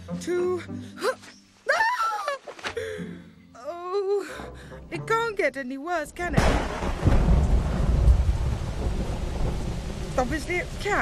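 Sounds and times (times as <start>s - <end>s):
thunder rumbling: 6.2s - 11.0s
heavy rain hissing: 6.4s - 11.0s.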